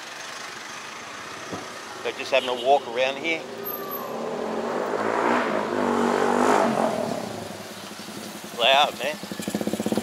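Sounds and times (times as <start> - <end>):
motorcycle engine passing: 3.5 - 10.0.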